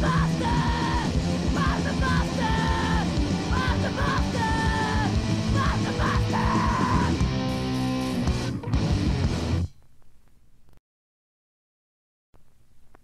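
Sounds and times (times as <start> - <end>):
hardcore punk song: 0.0 - 9.7.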